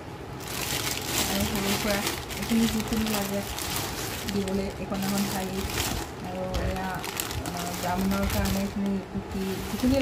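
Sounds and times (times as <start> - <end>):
plastic bags crinkling: 0.3 - 10.0.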